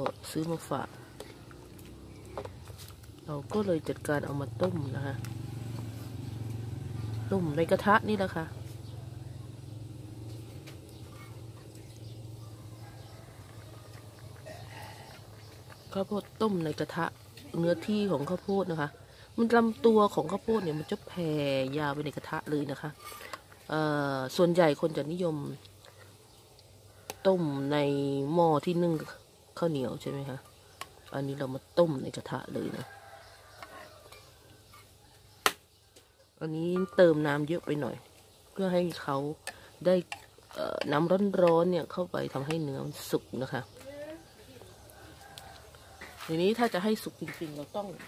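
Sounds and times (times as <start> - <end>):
metal ladle stirring in wok: 22.4 - 23.7, 39.4 - 41.6.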